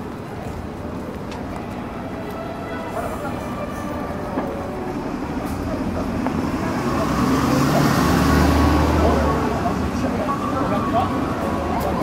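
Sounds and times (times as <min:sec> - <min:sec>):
vehicle engine hum passing: 0:04.8 - 0:12.0.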